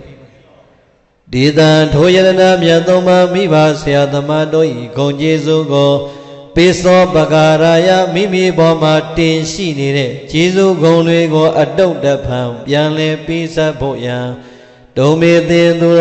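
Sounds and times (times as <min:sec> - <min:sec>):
man chanting verses: 0:00.0 - 0:16.0.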